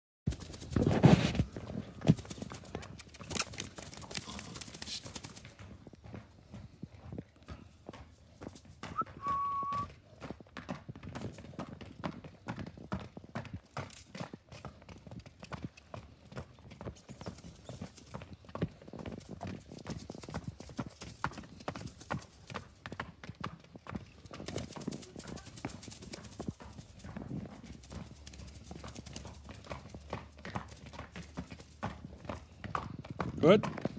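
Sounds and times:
horse hoofbeats: 0.3 - 33.9
short high whistle-like tone: 8.9 - 9.9.

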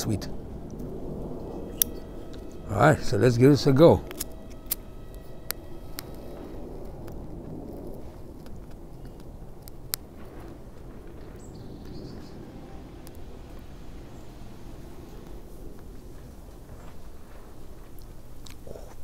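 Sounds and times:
soft steady background noise: 0.0 - 19.0
lighter clicks: 1.7 - 2.4, 4.0 - 6.4, 13.0 - 13.7.

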